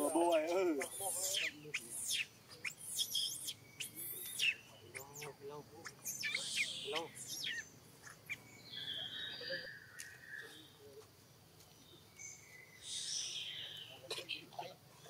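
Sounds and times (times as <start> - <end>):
whistled bird notes: 0.0 - 10.8, 12.2 - 14.0
birds chirping: 0.0 - 15.0.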